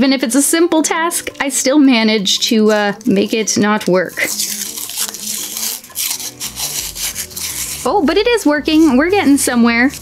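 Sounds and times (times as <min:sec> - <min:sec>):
paper tearing: 0:04.1 - 0:09.0.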